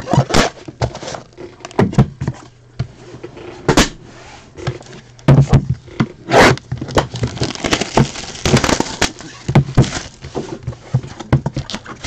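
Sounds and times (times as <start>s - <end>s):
plastic shrink wrap crinkling: 6.6s - 10.6s.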